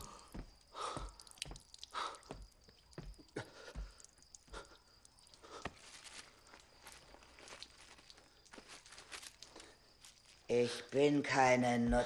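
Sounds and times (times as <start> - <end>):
faint soft clicks and rustles: 0.3 - 10.5.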